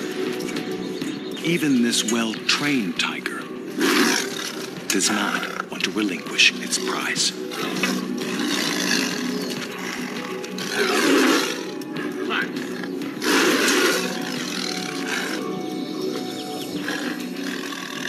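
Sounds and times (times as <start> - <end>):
background music: 0.0 - 18.0
tiger growling and snarling: 1.5 - 18.0.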